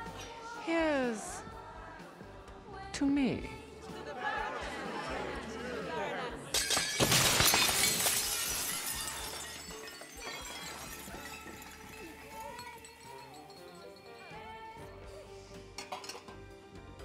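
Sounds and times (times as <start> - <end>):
crowd chatter: 4.0 - 6.6
glass shattering on floor: 6.5 - 14.2
glass shards tinkling: 6.6 - 14.7.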